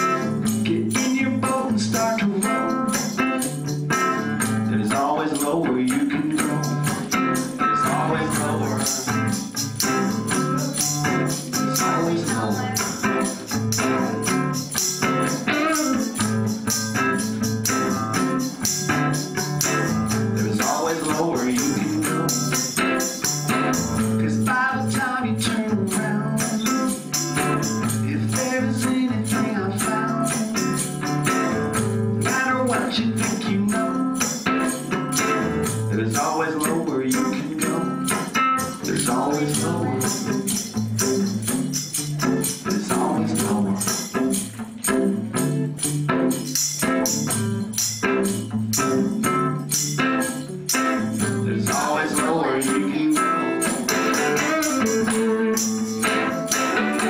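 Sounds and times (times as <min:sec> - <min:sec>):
electric guitar through amplifier: 0:00.0 - 0:57.0
hand percussion beat: 0:00.0 - 0:57.0
tambourine struck in rhythm: 0:00.0 - 0:57.0.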